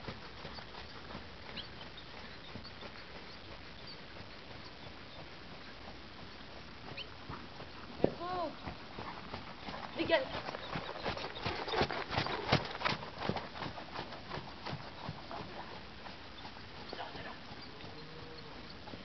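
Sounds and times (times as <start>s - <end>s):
horse hoofbeats on sand: 0.0s - 19.0s.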